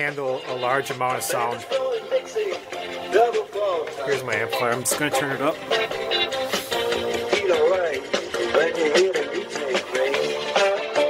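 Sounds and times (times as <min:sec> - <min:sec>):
rock song through rotating speaker: 0:00.0 - 0:11.0.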